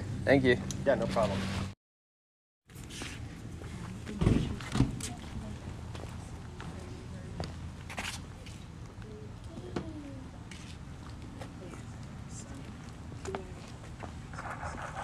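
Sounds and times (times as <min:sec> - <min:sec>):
outdoor background: 0:02.6 - 0:15.0.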